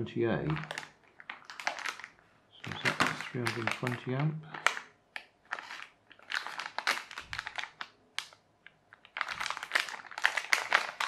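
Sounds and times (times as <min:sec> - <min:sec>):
plastic bags crinkling: 0:00.3 - 0:11.0.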